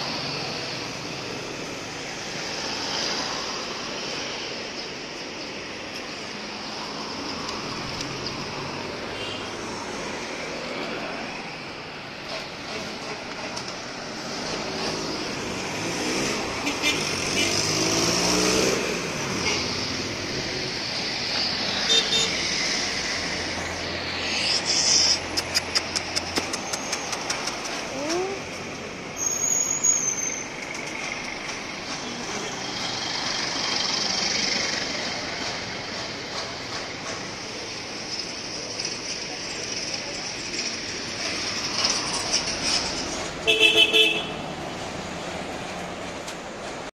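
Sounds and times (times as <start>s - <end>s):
street traffic: 0.0s - 46.9s
vehicle engine approaching: 13.8s - 29.2s.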